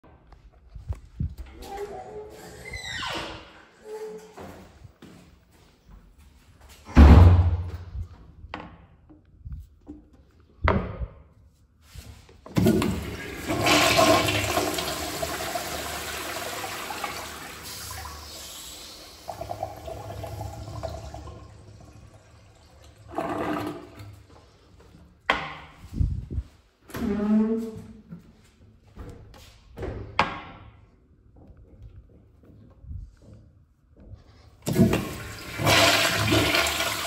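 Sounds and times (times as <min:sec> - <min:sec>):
toilet flush water rushing: 0:12.6 - 0:24.2, 0:34.6 - 0:37.0.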